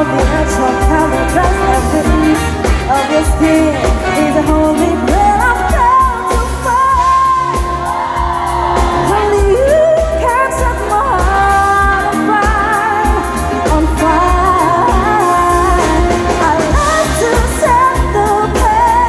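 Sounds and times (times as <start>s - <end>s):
drum kit: 0.0s - 19.0s
electric bass guitar: 0.0s - 19.0s
woman singing into microphone: 0.0s - 19.0s.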